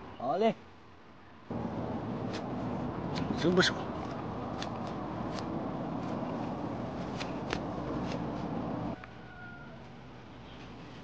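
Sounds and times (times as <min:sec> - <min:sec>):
hands rustling through plants: 0:01.5 - 0:09.0, 0:09.8 - 0:11.0.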